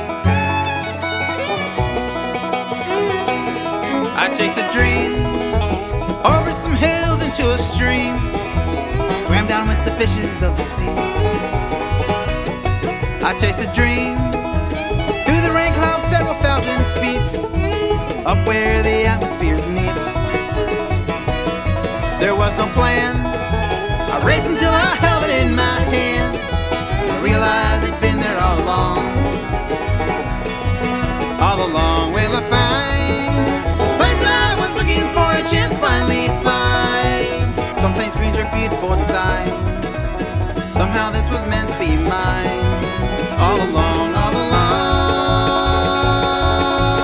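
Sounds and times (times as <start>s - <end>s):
bluegrass band playing: 0.0s - 47.0s.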